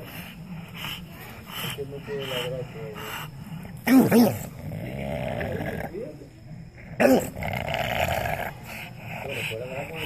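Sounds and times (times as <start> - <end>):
dog growling low and raspy: 0.0 - 10.0.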